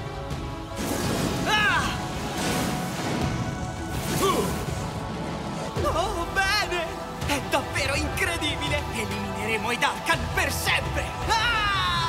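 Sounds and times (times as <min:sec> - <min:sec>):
crash: 0:00.7 - 0:05.4.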